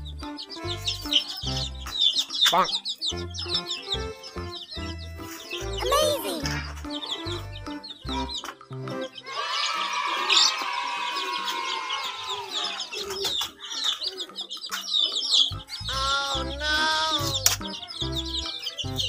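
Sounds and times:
background music with low beat: 0.0 - 9.2, 14.5 - 19.0
chicks peeping: 0.0 - 19.0.

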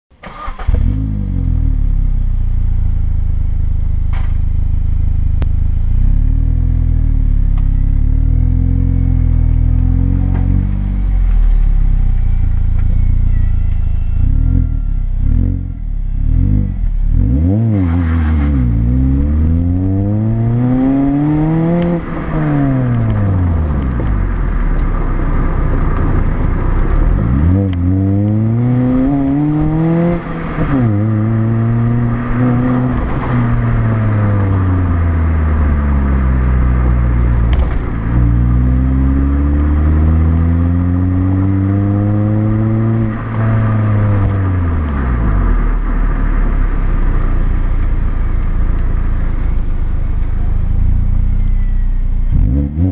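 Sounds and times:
car engine idling and revving: 0.1 - 52.9.

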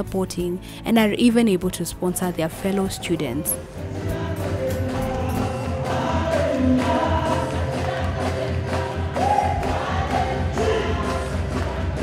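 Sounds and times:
choir singing: 3.8 - 12.0.

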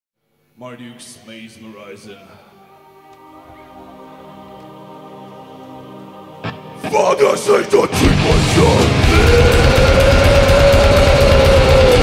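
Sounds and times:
distorted guitars: 6.4 - 12.0
fast dense drumming: 8.0 - 12.0.

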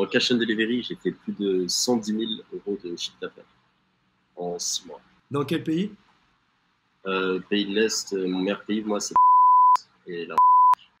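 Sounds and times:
person speaking: 0.0 - 3.5, 4.4 - 6.0
censor bleeps: 9.2 - 9.8, 10.4 - 10.8.

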